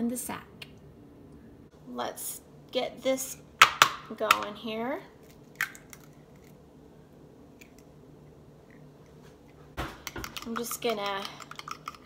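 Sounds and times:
egg shell cracking: 5.2 - 6.6, 10.0 - 12.0.

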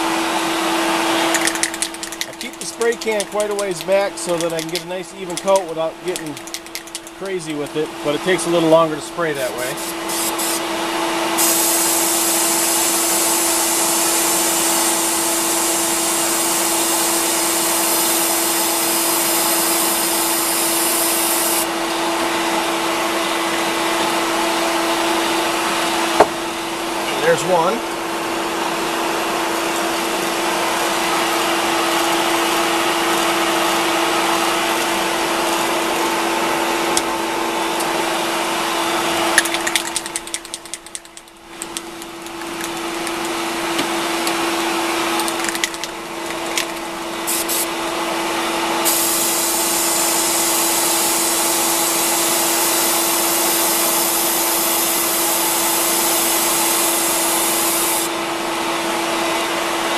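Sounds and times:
spray paint can hissing: 1.4 - 7.1, 9.7 - 10.6, 11.4 - 21.7, 47.2 - 47.7, 48.8 - 58.1
electric motor running: 11.4 - 21.7, 48.8 - 58.1.

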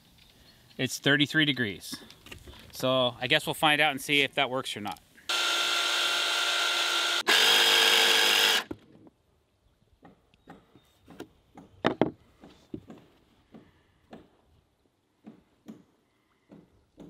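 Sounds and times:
jigsaw cutting board: 5.3 - 8.7.

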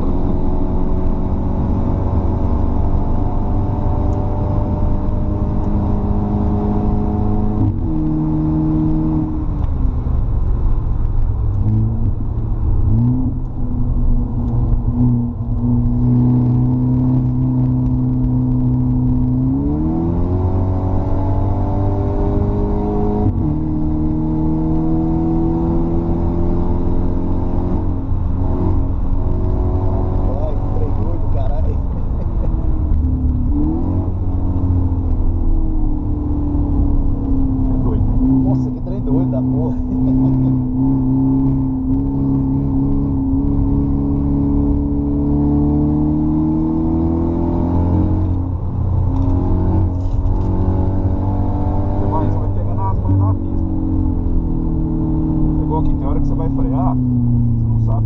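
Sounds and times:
car engine accelerating and shifting: 0.0 - 58.0.

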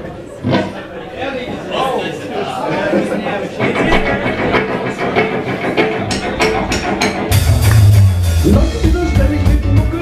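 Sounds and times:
ska-punk band playing: 3.6 - 10.0
sharp drum hits: 3.8 - 5.4.

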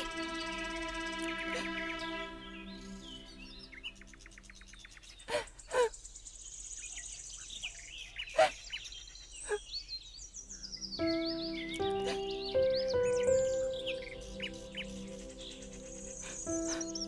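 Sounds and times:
small birds chirping and trilling: 0.0 - 17.0.

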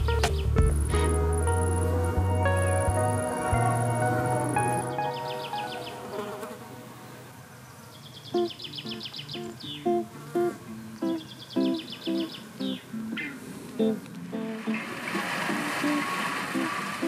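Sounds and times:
acoustic guitar music: 0.0 - 17.0
insects chirping: 3.1 - 15.0.

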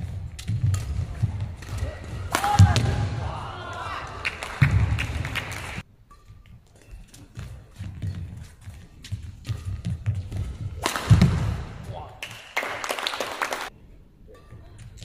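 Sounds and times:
racket hitting shuttlecock: 0.0 - 12.5
voices: 1.0 - 4.7.

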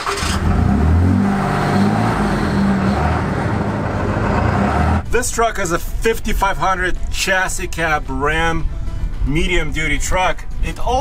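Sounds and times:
diesel engine running: 0.0 - 5.1.

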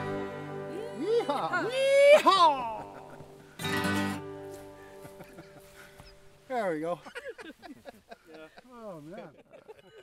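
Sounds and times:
acoustic guitar chord ringing: 0.0 - 1.8, 3.4 - 5.1
person whooping: 0.7 - 3.2.

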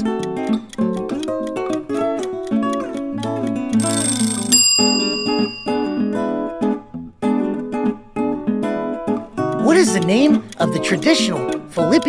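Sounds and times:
bell-like ding: 3.8 - 6.2
strummed acoustic guitar music: 5.9 - 12.0.

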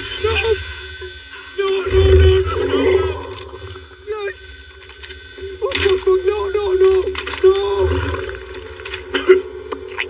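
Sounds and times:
deep rumble: 1.9 - 4.7.

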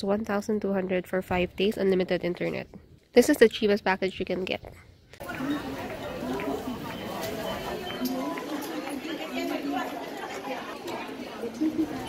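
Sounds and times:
indistinct background chatter: 5.2 - 12.0.

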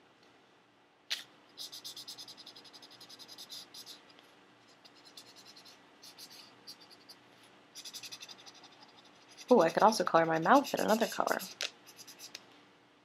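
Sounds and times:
marker scribbling on paper: 1.6 - 4.1, 4.7 - 7.2, 7.8 - 12.4.

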